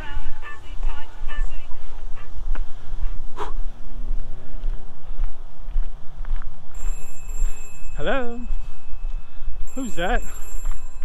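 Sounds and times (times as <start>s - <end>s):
constant low rumble: 0.0s - 11.0s
telephone ringing: 6.8s - 9.1s, 9.7s - 11.0s.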